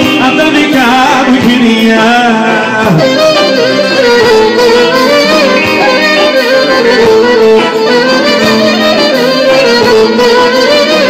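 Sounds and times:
string accompaniment: 0:00.0 - 0:11.0
clarinet melody: 0:02.7 - 0:11.0.

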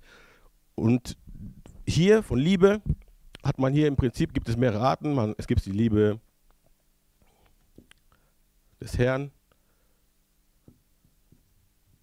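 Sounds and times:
man speaking: 0:00.8 - 0:01.2, 0:01.9 - 0:06.2, 0:08.8 - 0:09.4.

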